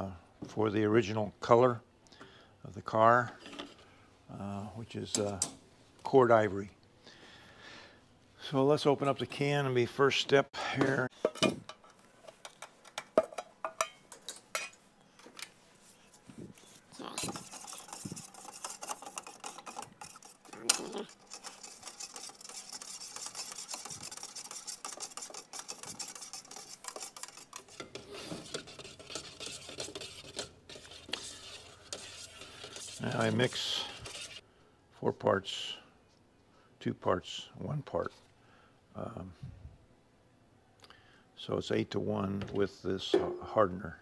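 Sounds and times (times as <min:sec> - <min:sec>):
stick stirring thick paint: 0:16.5 - 0:34.4.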